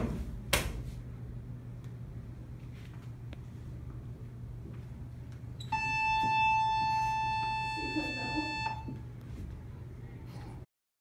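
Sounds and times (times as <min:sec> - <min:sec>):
low room hum: 0:00.0 - 0:10.7.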